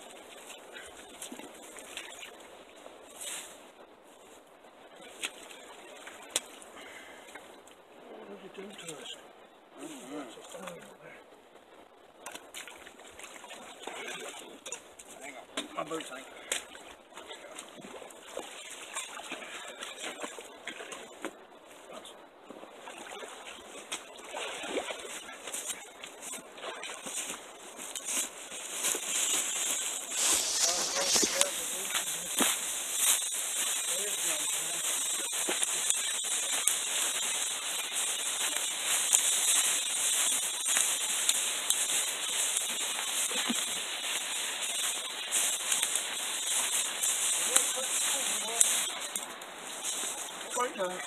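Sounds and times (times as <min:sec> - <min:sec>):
dry leaves rustling: 0:25.5 - 0:51.0
carcass dragged over forest floor: 0:28.0 - 0:49.1.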